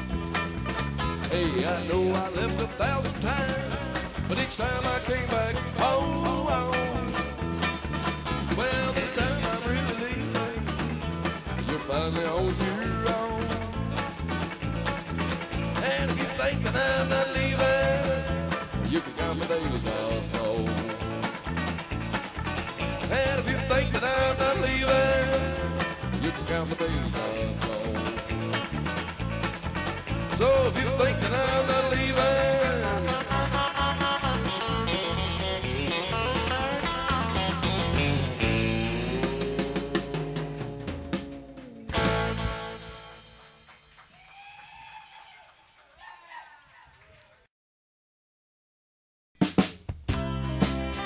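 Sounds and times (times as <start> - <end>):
live country rock band: 0.0 - 43.7, 50.1 - 51.0
electric guitar: 0.0 - 44.4
drums: 0.0 - 46.3, 49.4 - 51.0.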